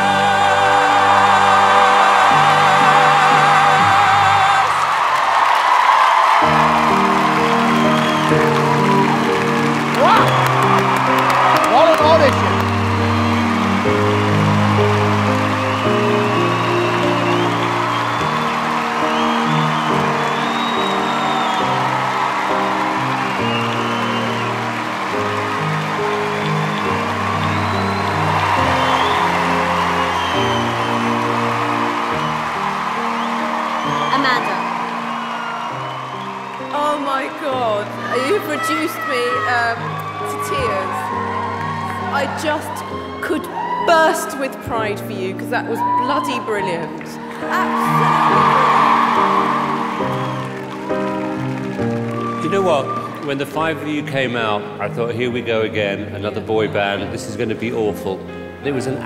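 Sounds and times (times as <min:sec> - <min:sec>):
audience cheering and applauding: 0:00.0 - 0:55.1
whoops and whistles: 0:07.1 - 0:13.9, 0:15.4 - 0:24.7, 0:26.1 - 0:32.4, 0:33.0 - 0:44.2, 0:48.0 - 0:51.4, 0:52.0 - 0:53.3.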